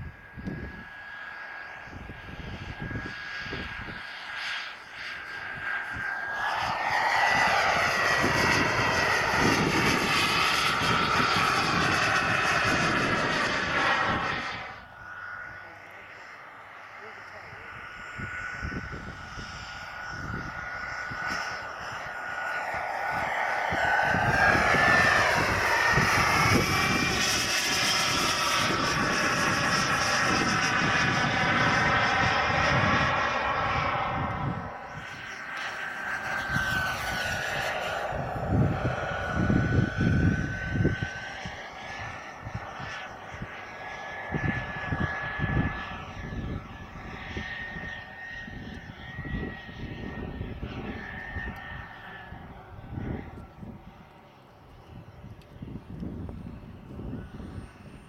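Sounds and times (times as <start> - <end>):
wind buffeting microphone: 0.0 - 15.7, 17.3 - 58.0
jet turbine engine whine: 0.0 - 58.0.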